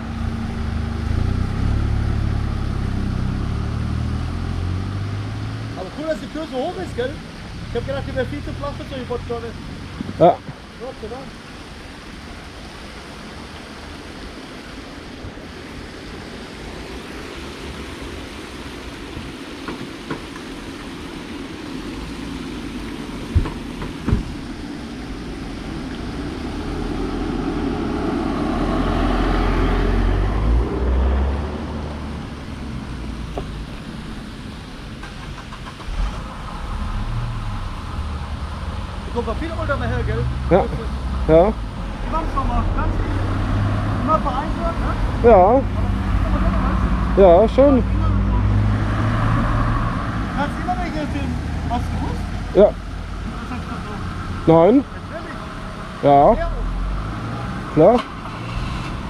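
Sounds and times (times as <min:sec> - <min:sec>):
vehicle passing: 0:00.0 - 0:11.4, 0:20.5 - 0:59.0
low engine hum: 0:00.0 - 0:59.0.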